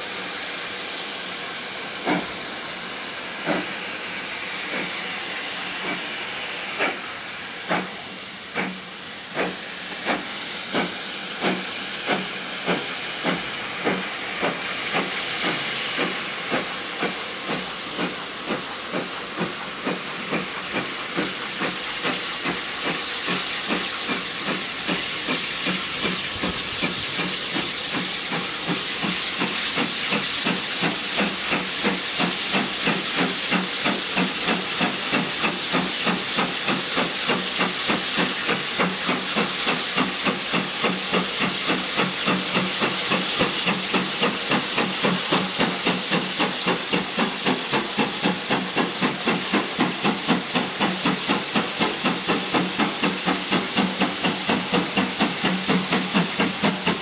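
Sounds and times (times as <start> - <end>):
hiss of steam: 0.0 - 57.0
steam locomotive exhaust beats: 0.0 - 57.0.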